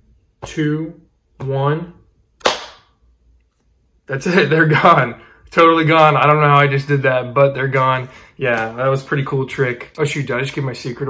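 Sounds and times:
sharp pop: 0:02.4 - 0:03.0.

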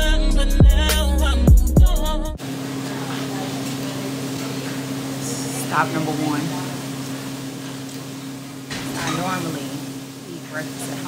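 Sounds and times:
person speaking: 0:02.8 - 0:06.9.

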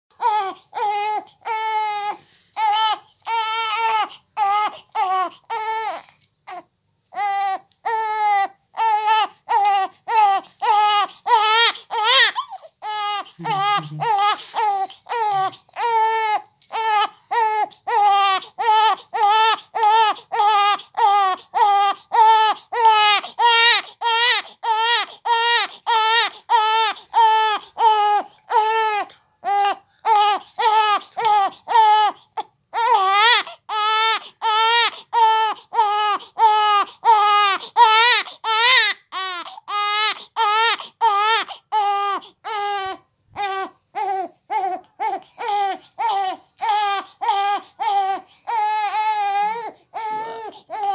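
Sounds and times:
newborn baby crying: 0:00.1 - 0:50.9.

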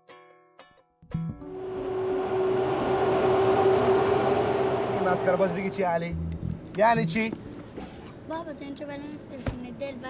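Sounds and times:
airliner engines droning: 0:01.4 - 0:07.6.

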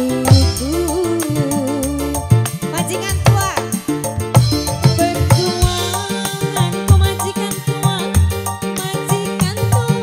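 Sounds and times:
bass line: 0:00.0 - 0:08.8
keyboard melody: 0:00.0 - 0:10.0.

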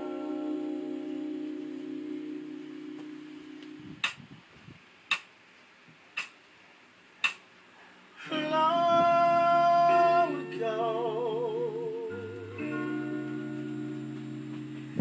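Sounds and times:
held keyboard chord: 0:00.0 - 0:04.1, 0:08.2 - 0:15.0
sharp clicks marking a beat: 0:04.0 - 0:04.2, 0:05.1 - 0:05.3, 0:06.2 - 0:06.4, 0:07.2 - 0:07.5.

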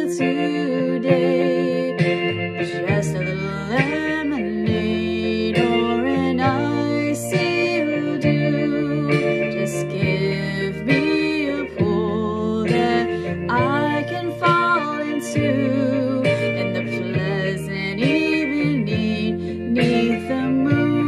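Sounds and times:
plucked guitar: 0:00.0 - 0:21.0
woman singing: 0:00.0 - 0:21.0.

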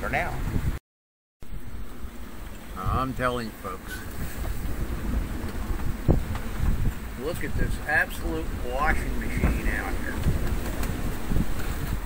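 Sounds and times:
rough sea: 0:00.0 - 0:00.8, 0:02.1 - 0:12.0
strong wind: 0:00.0 - 0:00.8, 0:01.4 - 0:12.0
man's voice: 0:07.2 - 0:10.2.

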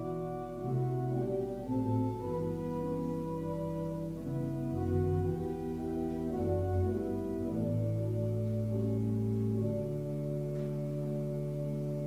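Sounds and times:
organ playing hymn chords: 0:00.0 - 0:12.0.

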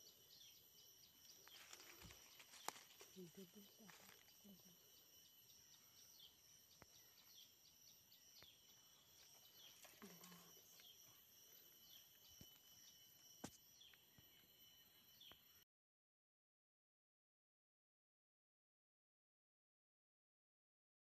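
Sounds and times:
high insect drone: 0:00.0 - 0:15.6.

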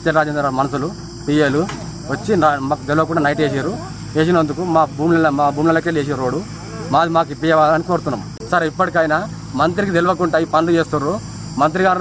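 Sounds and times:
insects chirring: 0:00.0 - 0:12.0
man talking: 0:00.0 - 0:12.0.

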